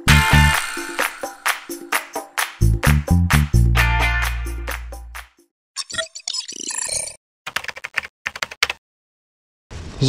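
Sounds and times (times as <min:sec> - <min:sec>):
computer keyboard typing: 0:07.5 - 0:08.8.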